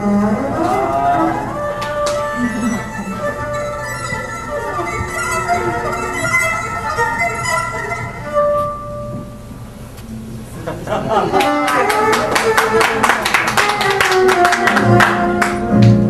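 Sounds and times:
violin playing jazz melody: 0:00.0 - 0:09.8, 0:11.3 - 0:16.0.

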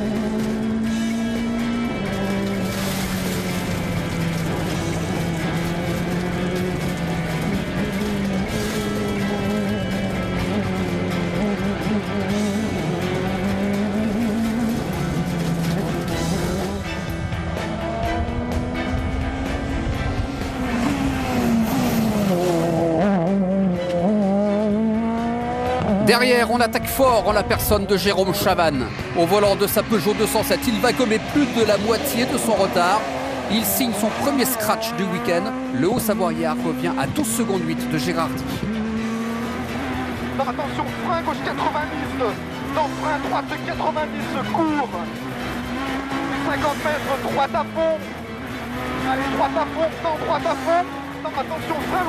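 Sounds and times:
rally car engine revving: 0:00.0 - 0:52.0.

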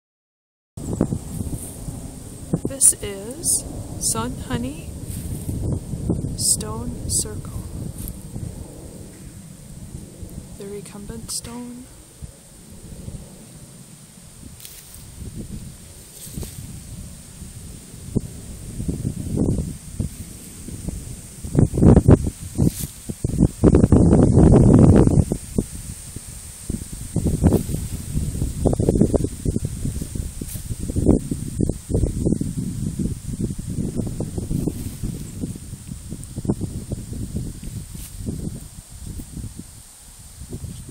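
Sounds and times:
wind buffeting microphone: 0:00.8 - 0:40.9.

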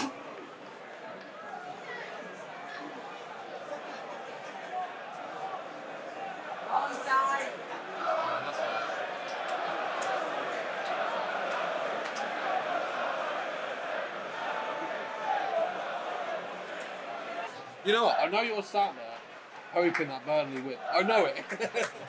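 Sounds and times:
crowd babble: 0:00.0 - 0:22.0.

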